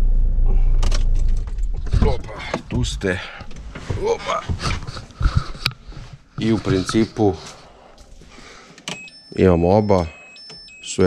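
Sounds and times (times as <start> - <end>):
car engine idling: 0.0 - 7.8.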